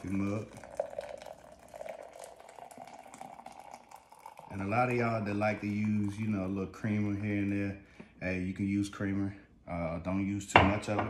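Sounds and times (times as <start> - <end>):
water pouring into a mug: 0.0 - 7.7.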